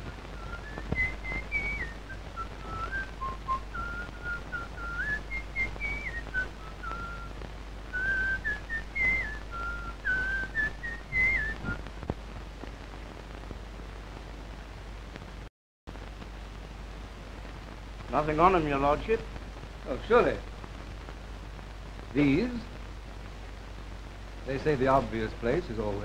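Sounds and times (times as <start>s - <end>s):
old film soundtrack hiss: 0.0s - 26.0s
man whistling a tune: 0.4s - 7.3s, 7.9s - 11.8s.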